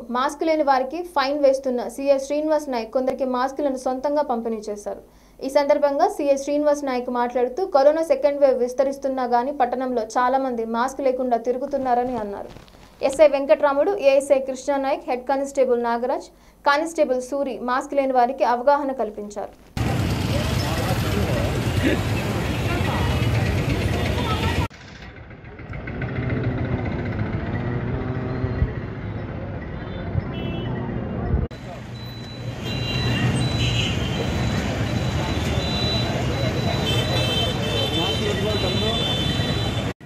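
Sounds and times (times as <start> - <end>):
people talking: 0.0 - 24.7
street traffic: 19.6 - 40.0
motorcycles passing: 19.8 - 40.0.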